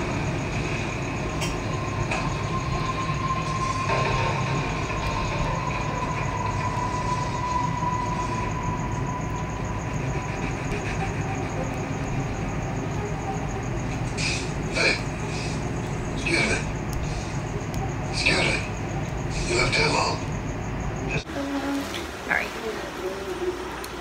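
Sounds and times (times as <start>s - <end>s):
low mechanical hum: 0.0s - 24.0s
thin even whine: 0.0s - 24.0s.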